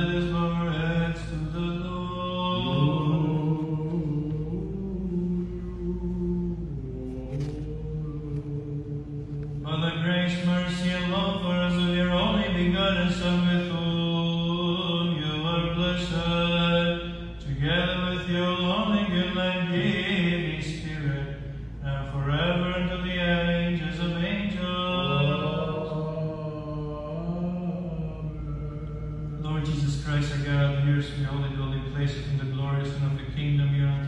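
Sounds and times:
man chanting unaccompanied: 0.0 - 34.0.

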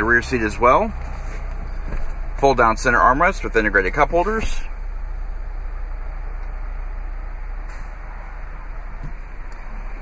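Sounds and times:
deep rumble: 0.0 - 10.0.

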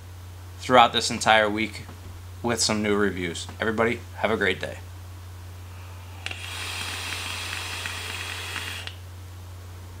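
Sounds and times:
atomizer hissing and crackling: 5.8 - 9.0.

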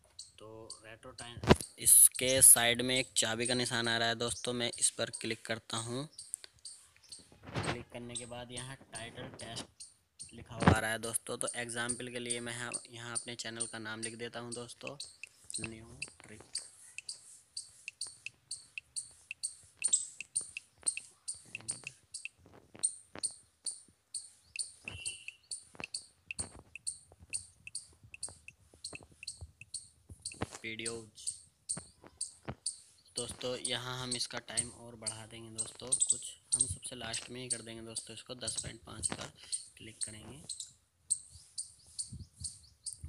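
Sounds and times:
small bird chirping: 0.0 - 43.0.

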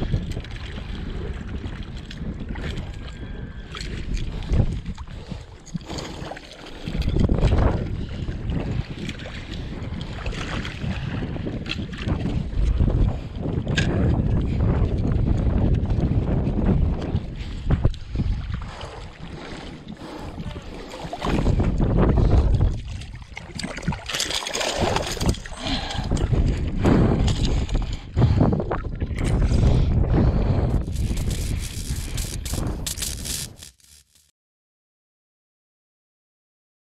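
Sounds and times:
wind buffeting microphone: 0.0 - 24.1, 24.7 - 33.5
water lapping and sloshing: 0.0 - 30.8.

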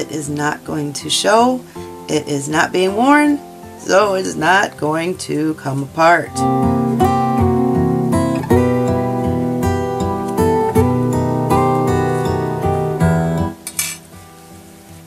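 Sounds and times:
acoustic guitar picking: 0.0 - 15.0.

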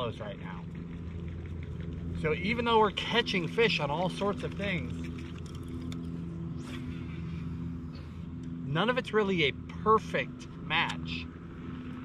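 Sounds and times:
electric trolling motor humming: 0.0 - 12.0.

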